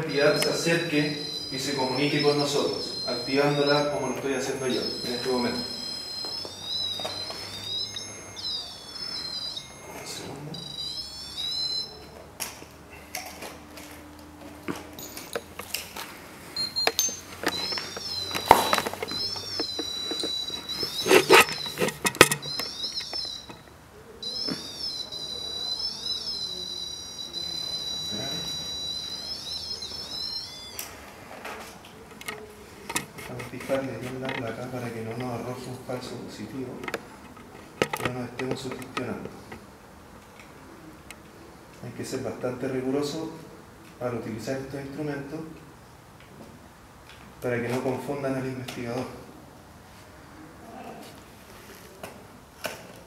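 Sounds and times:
warbling electronic chirps: 0:00.0 - 0:12.1, 0:16.6 - 0:30.8
device handling knocks: 0:21.1 - 0:22.7.

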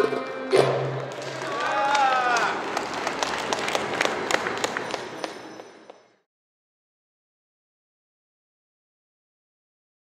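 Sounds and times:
audience applauding: 0:01.0 - 0:05.6.

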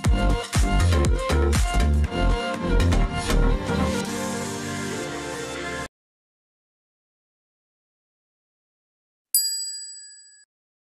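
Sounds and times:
notification bell ding: 0:09.4 - 0:10.5.

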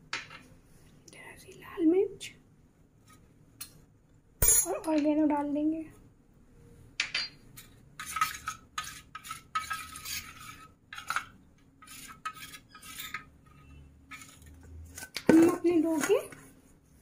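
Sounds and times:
spoon scraping and clinking in bowl: 0:07.3 - 0:14.6.

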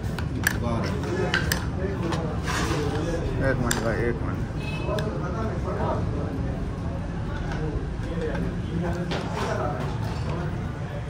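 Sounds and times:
people talking: 0:00.5 - 0:11.0.

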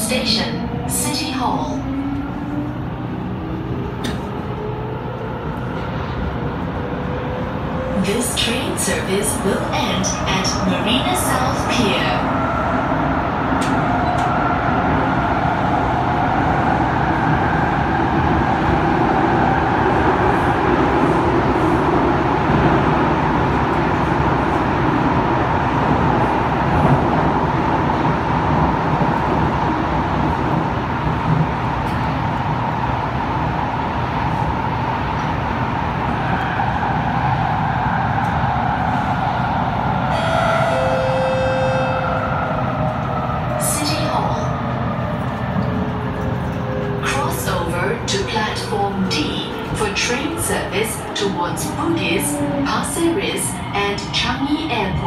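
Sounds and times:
train rumble in tunnel: 0:00.0 - 0:55.0.

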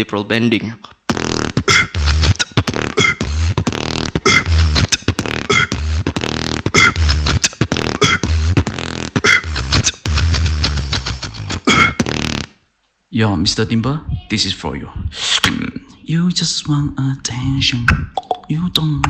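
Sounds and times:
beatboxing: 0:00.8 - 0:12.6, 0:15.0 - 0:19.0.

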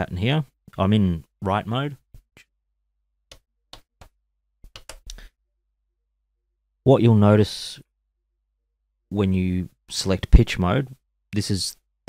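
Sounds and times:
buttons clicking: 0:04.7 - 0:05.2.

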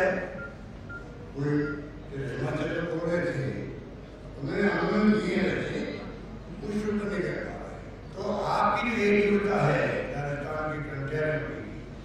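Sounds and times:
man speaking into a microphone: 0:00.0 - 0:00.4, 0:01.4 - 0:12.0
short faint beeps: 0:00.0 - 0:02.1.

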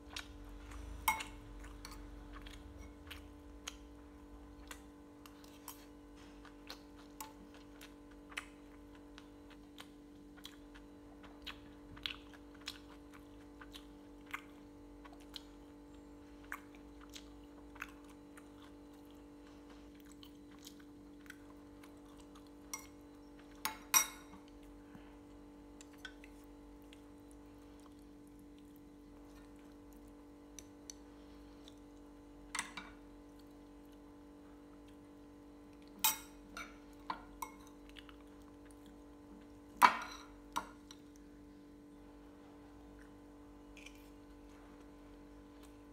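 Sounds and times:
steady low hum: 0:00.0 - 0:45.9
chewing and mouth clicks: 0:00.1 - 0:03.9, 0:04.6 - 0:23.6.

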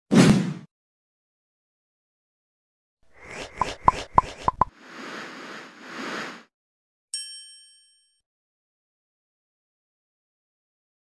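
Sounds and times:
swishing whooshes: 0:03.1 - 0:06.5
quick popping sounds: 0:03.2 - 0:04.7.

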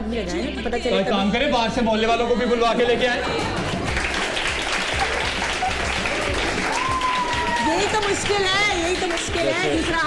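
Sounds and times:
background music: 0:00.0 - 0:10.0
audience applauding: 0:03.2 - 0:10.0.

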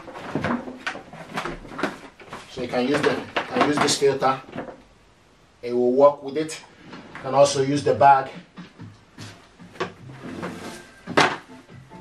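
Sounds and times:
plastic knocks and clicks: 0:08.4 - 0:10.1.

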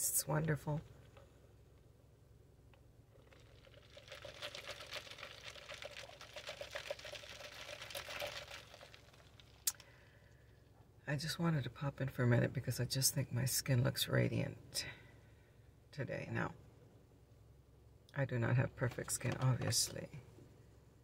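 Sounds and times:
plastic cup crackling: 0:03.1 - 0:09.9
drink sipped through straw: 0:03.2 - 0:09.9.

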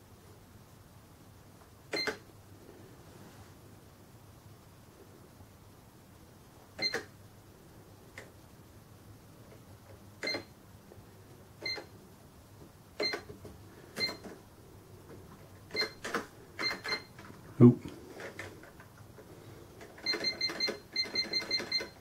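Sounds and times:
cash register key beeps: 0:01.9 - 0:02.2, 0:06.8 - 0:07.1, 0:10.2 - 0:10.5, 0:11.6 - 0:11.9, 0:13.0 - 0:13.3, 0:14.0 - 0:14.3, 0:15.7 - 0:17.2, 0:20.0 - 0:22.0.

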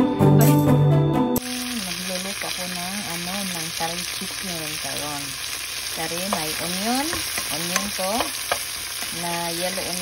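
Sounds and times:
music: 0:00.0 - 0:03.2
vegetables sizzling in hot oil: 0:01.4 - 0:10.0.

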